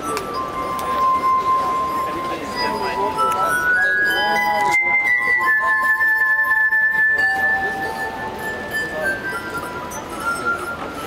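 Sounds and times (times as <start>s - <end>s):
glass harp ringing tones: 0.0s - 11.0s.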